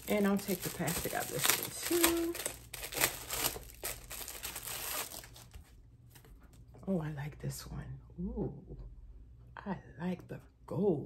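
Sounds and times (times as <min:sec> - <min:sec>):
plastic wrapping crinkling: 0:00.0 - 0:06.2.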